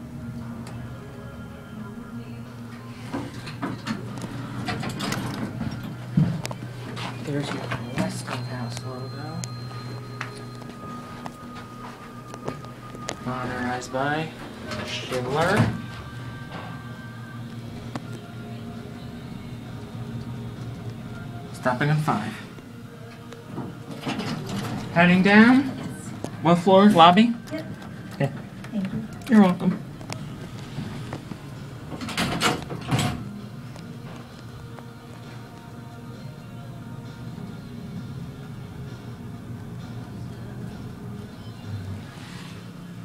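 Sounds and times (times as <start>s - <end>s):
elevator low hum: 0.0s - 43.0s
door operator mechanical rattle: 3.2s - 6.4s, 23.9s - 26.4s, 31.0s - 33.4s.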